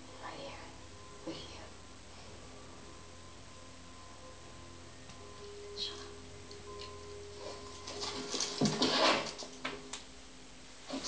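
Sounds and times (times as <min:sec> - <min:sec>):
low steady hum: 0:00.0 - 0:11.0
woman whispering: 0:00.2 - 0:01.8, 0:05.7 - 0:06.3.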